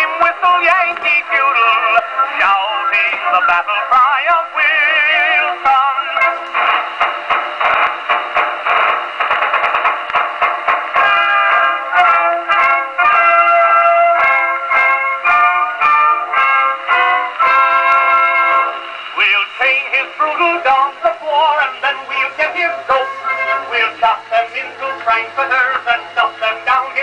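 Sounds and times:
instrumental music on gramophone: 0.0 - 27.0.

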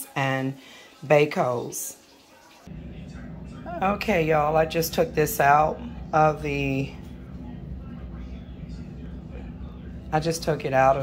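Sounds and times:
steady low hum: 2.7 - 11.0.

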